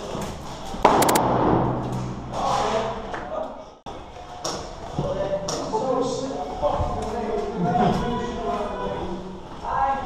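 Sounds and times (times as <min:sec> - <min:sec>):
sharp airsoft shots: 0:00.8 - 0:01.3
loud gun bang: 0:00.8 - 0:01.8.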